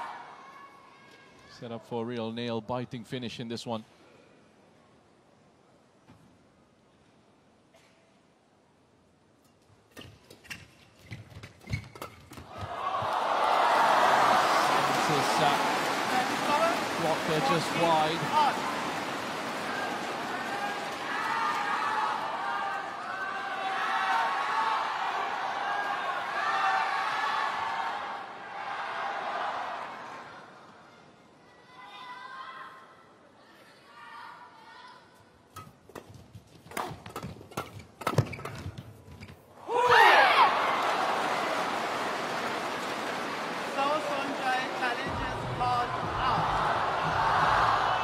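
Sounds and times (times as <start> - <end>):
crowd cheering and shouting: 12.5 - 30.3, 39.6 - 48.0
racket hitting shuttlecock: 35.5 - 38.7.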